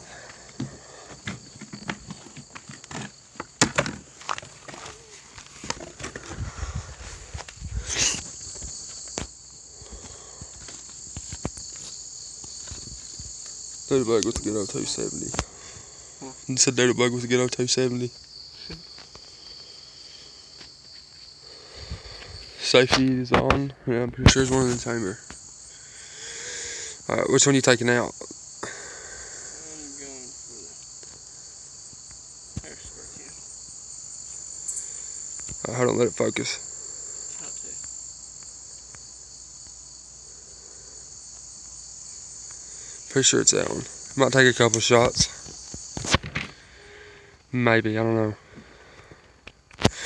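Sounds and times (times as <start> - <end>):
insects droning: 0.0 - 50.0
footsteps on grass: 0.3 - 13.8.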